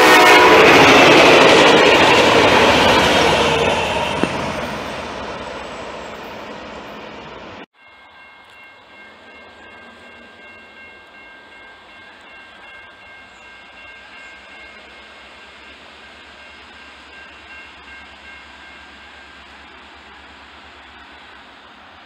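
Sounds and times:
railroad crossing bell ringing: 0.0 - 21.3.

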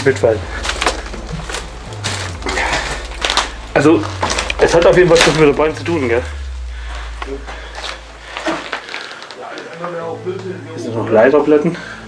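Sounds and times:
low rumble: 0.0 - 10.4
crackles and clicks: 0.0 - 10.6.

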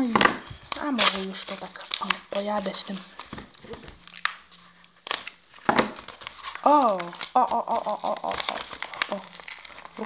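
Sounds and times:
paper rustling: 0.0 - 10.0
scissors snipping paper: 0.7 - 3.4, 4.1 - 10.0.

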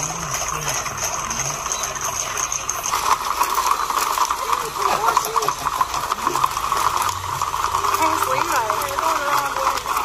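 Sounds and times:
horse hooves clattering on pavement: 0.0 - 10.0.

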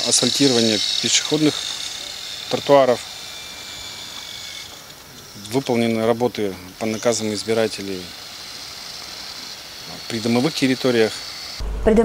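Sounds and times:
outdoor background hiss: 0.0 - 12.0
thin high steady tone: 0.0 - 12.0.

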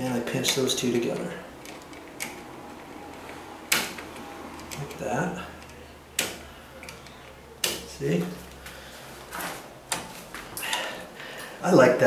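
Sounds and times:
wires rattling and scraping: 0.0 - 11.7.

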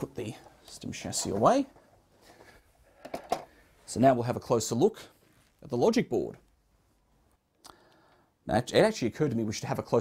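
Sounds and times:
man speaking: 0.0 - 1.8, 3.9 - 6.5, 8.4 - 10.0.

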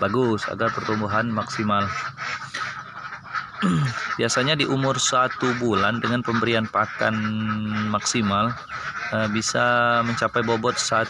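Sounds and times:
man talking: 0.0 - 2.0, 3.6 - 11.0
ducklings peeping: 0.0 - 11.0.

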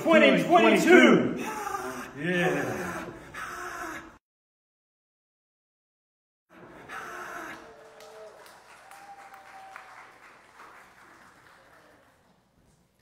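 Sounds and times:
voices in a room: 0.0 - 4.2
congregation applauding: 6.9 - 13.0.

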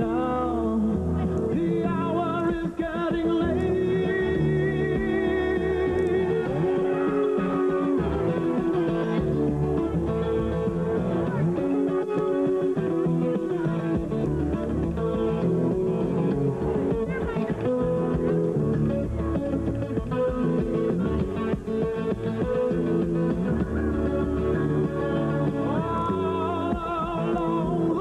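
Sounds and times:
acoustic guitar chords and bass notes: 0.0 - 28.0.

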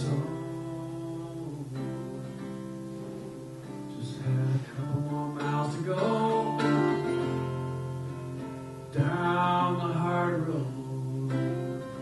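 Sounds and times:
person singing: 0.0 - 7.6, 8.9 - 12.0
acoustic guitar chords: 0.0 - 12.0.

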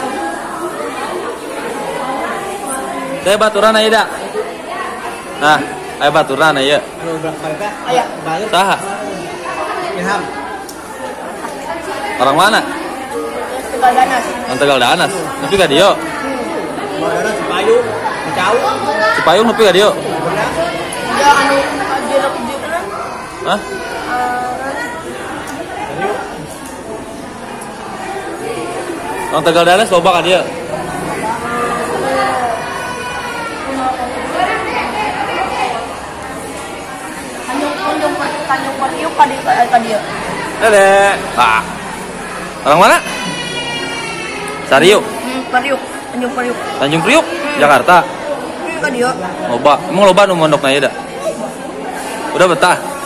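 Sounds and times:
people talking in a tiled hall: 0.0 - 53.0.

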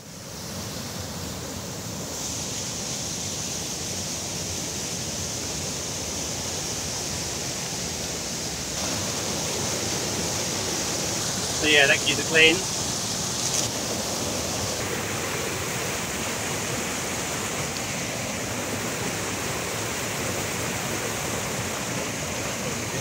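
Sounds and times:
small waterfall rushing: 0.0 - 23.0
person speaking: 11.6 - 12.7.

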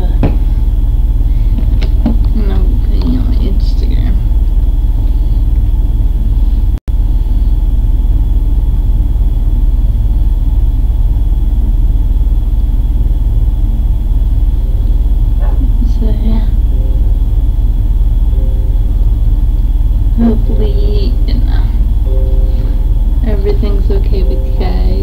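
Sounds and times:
loud low rumble: 0.0 - 25.0.

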